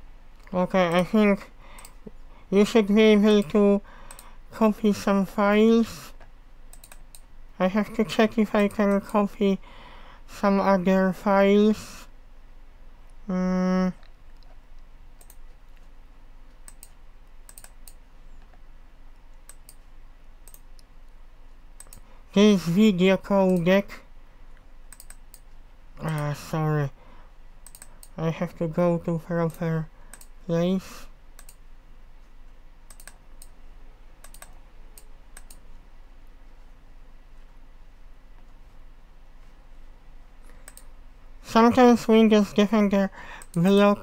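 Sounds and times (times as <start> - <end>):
low steady hum: 0.0 - 44.0
computer mouse clicking: 4.1 - 4.3, 6.2 - 7.3, 15.2 - 15.9, 16.5 - 20.9, 21.8 - 22.0, 24.9 - 26.2, 27.6 - 28.2, 29.4 - 30.3, 31.4 - 31.6, 32.9 - 33.6, 34.2 - 35.7, 40.4 - 40.9, 43.4 - 43.8.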